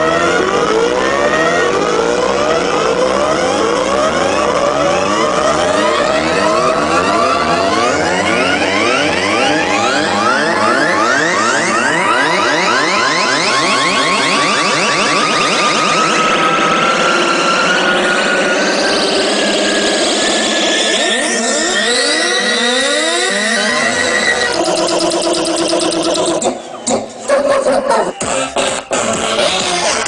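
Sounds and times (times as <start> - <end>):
fast-sweeping synth patterns: 0.0 - 30.0
rising synth tone: 0.0 - 30.0.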